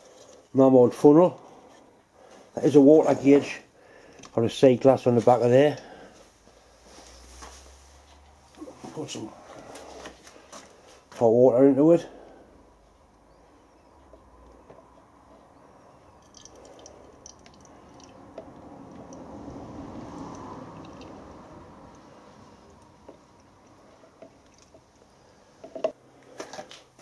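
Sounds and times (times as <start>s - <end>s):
water pouring through funnel: 16.1s - 25.0s.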